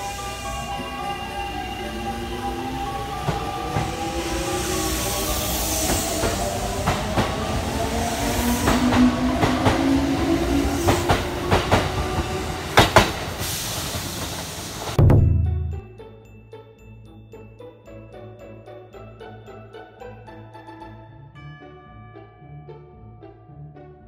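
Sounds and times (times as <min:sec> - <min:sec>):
train wheels clacking over rail joints: 0:10.8 - 0:15.0.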